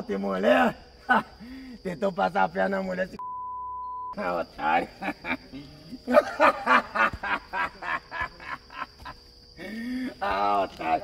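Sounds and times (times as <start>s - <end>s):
man laughing: 1.0s - 1.4s, 4.2s - 11.0s.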